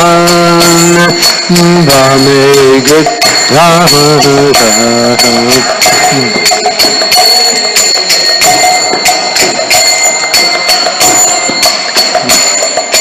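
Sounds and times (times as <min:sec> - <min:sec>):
hand cymbals clashing: 0:00.0 - 0:13.0.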